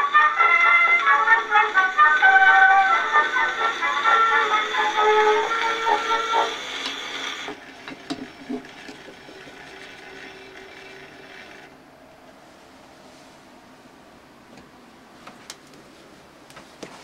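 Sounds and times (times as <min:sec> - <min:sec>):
phonograph music: 0:00.0 - 0:07.5
faint mechanism running: 0:00.0 - 0:16.8.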